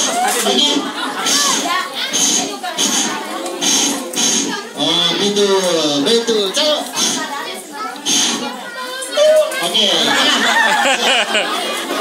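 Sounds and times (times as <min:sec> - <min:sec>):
children's voices and chatter: 0:00.0 - 0:12.0.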